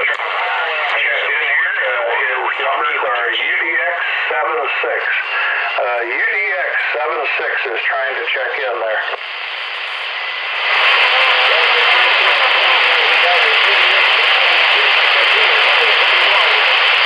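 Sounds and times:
faint voice over radio: 0.0 - 17.0
radio static hiss: 0.0 - 17.0.

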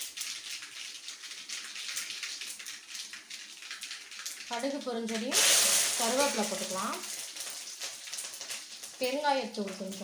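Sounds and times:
seeds crackling in hot oil: 0.0 - 10.0.

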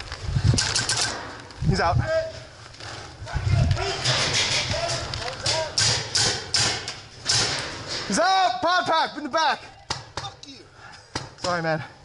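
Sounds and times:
distant shouts: 3.2 - 6.5.

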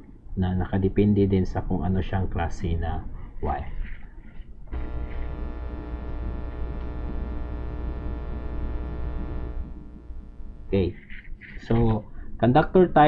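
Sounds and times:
electrical hum: 2.4 - 12.3.

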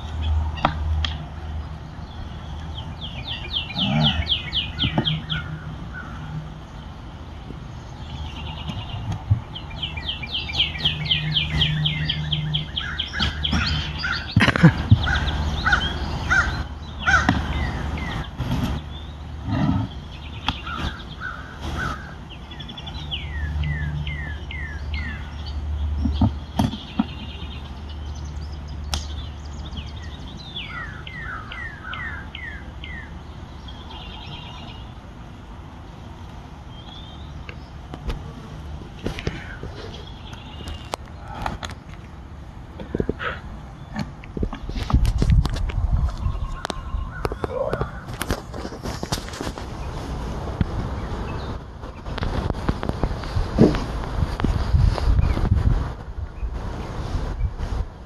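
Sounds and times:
songbirds singing: 0.0 - 58.0.

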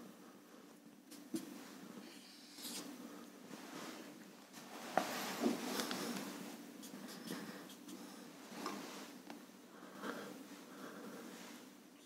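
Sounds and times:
marker writing on whiteboard: 6.8 - 8.0.

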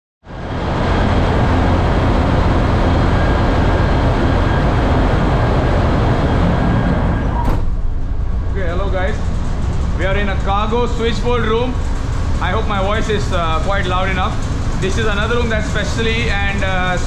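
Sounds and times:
machinery rumble: 0.2 - 17.0
ventilation hiss: 0.3 - 17.0.

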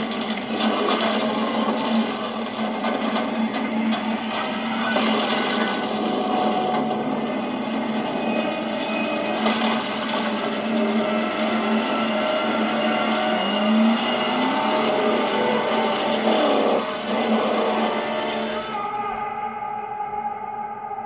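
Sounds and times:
short rising whine: 3.3 - 21.0.

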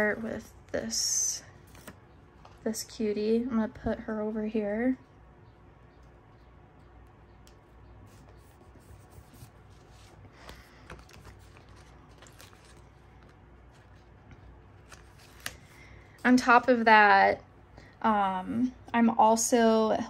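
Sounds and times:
low room hum: 0.0 - 20.0
paper sticker sheets rustling: 7.4 - 16.6.

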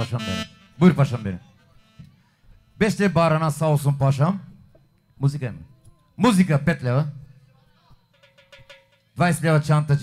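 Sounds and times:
man speaking over pa system: 0.0 - 8.1, 9.2 - 10.0.

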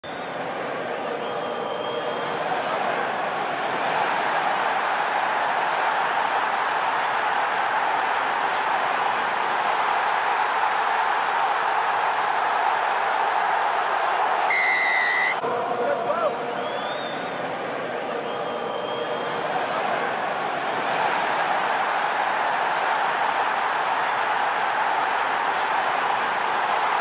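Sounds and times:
stadium crowd roar: 0.0 - 27.0.

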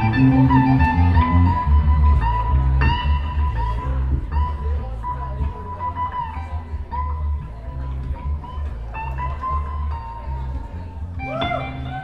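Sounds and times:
electric guitar: 0.0 - 4.5
wavering lead melody: 0.0 - 4.8
live band music: 0.0 - 7.6, 8.2 - 12.0
bass notes: 0.0 - 12.0.

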